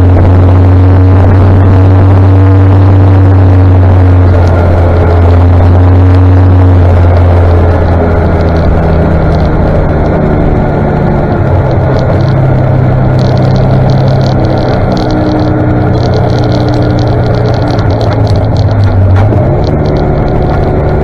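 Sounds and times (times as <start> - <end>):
armoured car engine running: 0.0 - 21.0.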